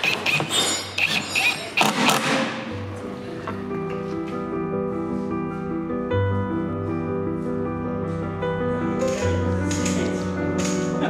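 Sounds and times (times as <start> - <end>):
cordless drill driving screws: 0.0 - 2.4
soft piano music: 2.6 - 11.0.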